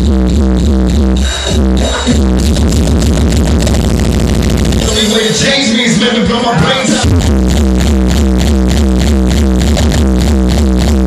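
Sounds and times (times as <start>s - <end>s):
loud hardcore dance music: 0.0s - 11.0s.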